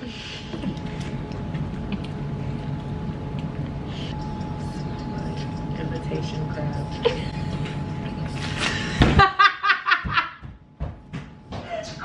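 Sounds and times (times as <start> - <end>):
woman laughing hard: 8.9 - 10.4.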